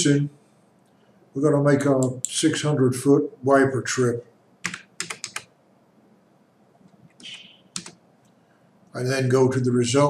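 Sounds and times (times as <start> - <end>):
computer keyboard key clicks: 4.6 - 5.5, 7.1 - 8.0.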